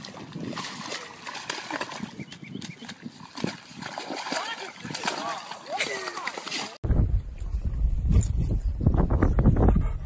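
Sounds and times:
dog splashing in muddy puddle: 0.0s - 6.8s.

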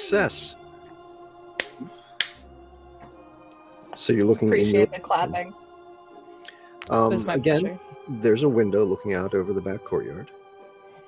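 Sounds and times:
quiet background music: 0.0s - 11.0s
sharp hand claps: 1.6s - 2.5s.

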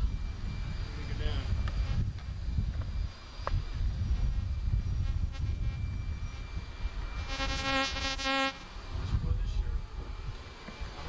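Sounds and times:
harsh buzzing tone: 0.0s - 9.1s.

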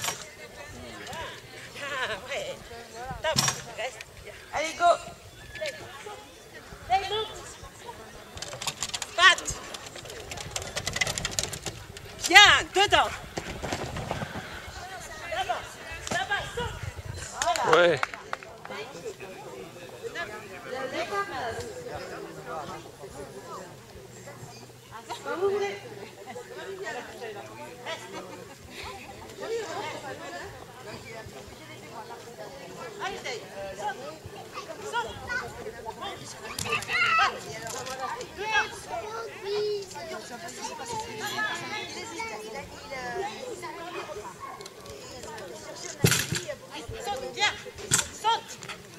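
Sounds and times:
people chattering: 0.0s - 48.9s.

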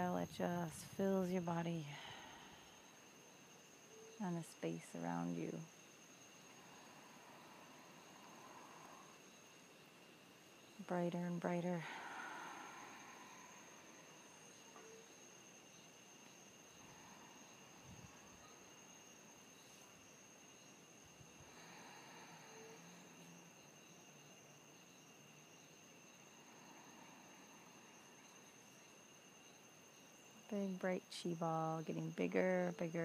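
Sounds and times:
high-pitched insect drone: 0.0s - 33.0s.

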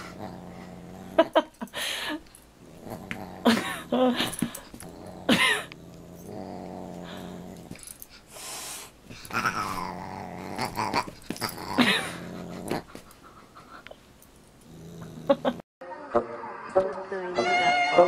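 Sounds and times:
dog play growling: 0.0s - 8.3s, 9.1s - 13.9s, 14.5s - 15.6s.

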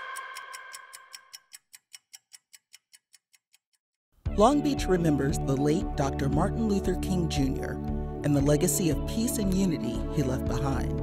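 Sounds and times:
clock-like ticking: 0.0s - 3.8s.

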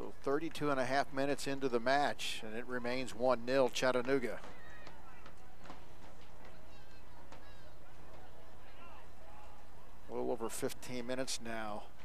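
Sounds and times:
distant players shouting: 4.0s - 10.1s.

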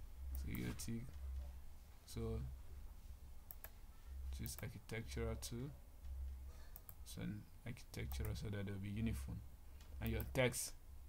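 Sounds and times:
low steady hum: 0.0s - 11.0s
computer mouse clicks: 3.5s - 3.8s, 6.7s - 7.0s, 8.1s - 8.4s, 10.0s - 10.4s.

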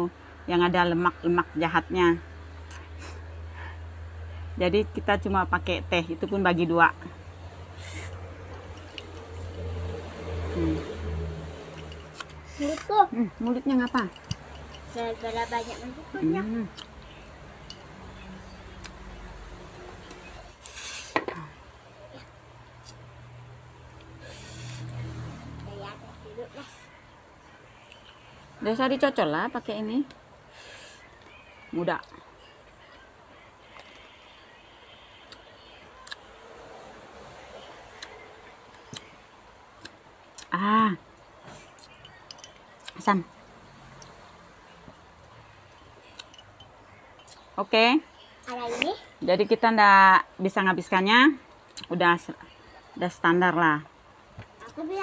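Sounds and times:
quiet eating sounds: 7.0s - 28.6s, 30.0s - 49.2s, 51.4s - 53.0s
short hiss: 20.6s - 21.2s.

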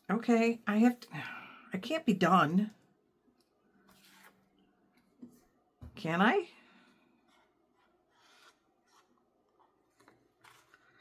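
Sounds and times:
soft scrapes: 3.8s - 4.5s.

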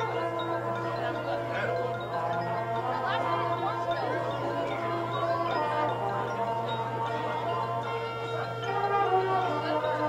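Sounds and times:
bell-like ringing tones: 0.0s - 10.0s.

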